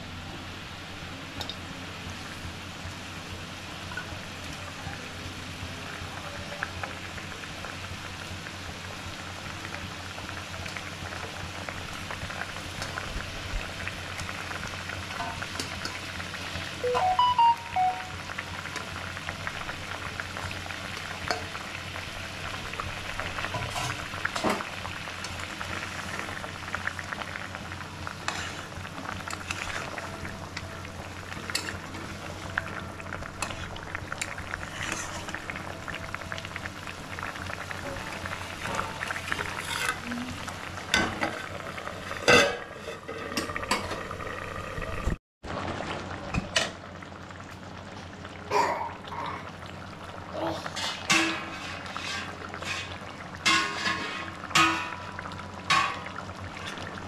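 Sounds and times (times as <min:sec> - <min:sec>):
curry boiling and sizzling in a pan: 0:00.0 - 0:57.0.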